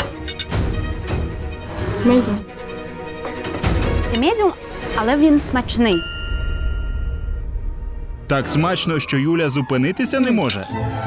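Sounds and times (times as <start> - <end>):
low background music: 0.0 - 11.0
bell-like ding: 5.9 - 7.9.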